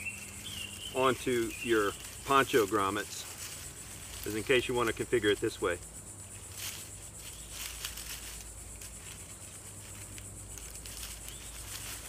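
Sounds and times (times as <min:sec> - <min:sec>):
cord rustling in hands: 0:00.0 - 0:12.0
quiet outdoor background: 0:00.0 - 0:12.0.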